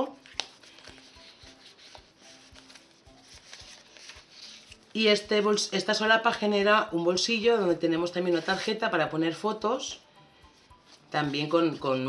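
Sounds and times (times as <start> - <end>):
paper and card rubbing and sliding: 0.2 - 4.9, 10.5 - 12.0.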